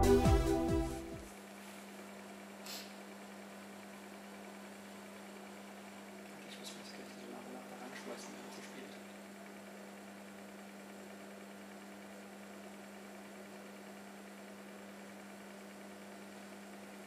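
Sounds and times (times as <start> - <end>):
light hiss: 2.6 - 3.0.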